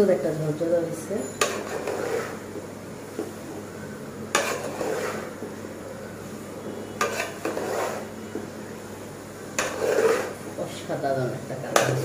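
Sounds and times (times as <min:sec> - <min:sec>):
metal spatula scraping a pot: 0:01.3 - 0:02.4, 0:04.3 - 0:05.4, 0:06.9 - 0:08.2, 0:09.5 - 0:10.5, 0:11.7 - 0:12.0.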